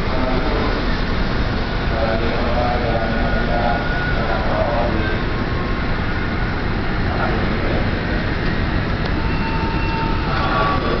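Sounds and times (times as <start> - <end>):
train wheels rumbling on rails: 0.0 - 11.0.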